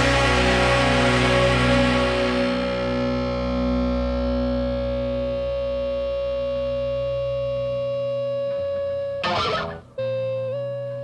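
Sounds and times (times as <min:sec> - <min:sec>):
distorted electric guitar chord ringing: 0:09.2 - 0:10.2.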